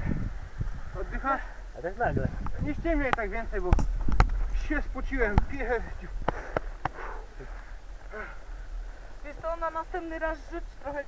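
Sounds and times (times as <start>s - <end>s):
low steady rumble: 0.0s - 11.0s
faint human vocal sounds: 7.0s - 8.5s.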